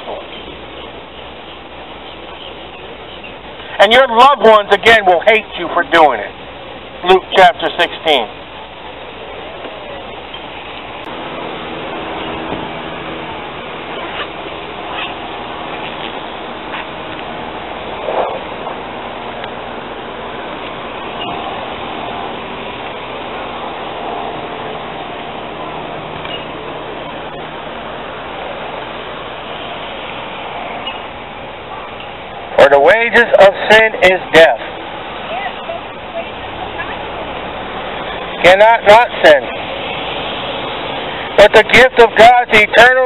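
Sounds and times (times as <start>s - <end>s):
faint passing traffic: 0.0s - 43.0s.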